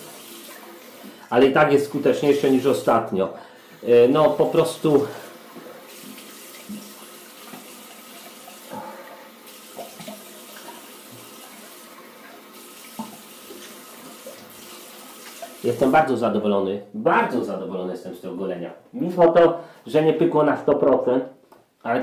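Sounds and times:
tap running into a sink: 4.2 - 8.9, 9.5 - 15.6
water splashing: 4.2 - 15.9.

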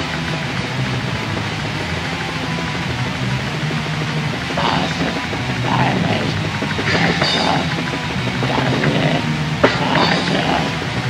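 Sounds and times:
black metal music: 0.0 - 11.0
sharp hit: 1.3 - 11.0.

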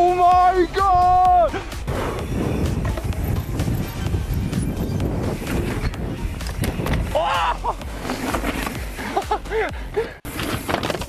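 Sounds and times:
bike tyres rolling on dirt trail: 10.2 - 11.0.

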